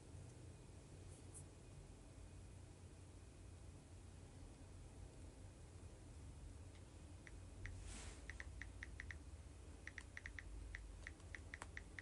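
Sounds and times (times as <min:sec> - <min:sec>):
fingers tapping smartphone screen: 0:07.3 - 0:09.2, 0:09.8 - 0:12.0.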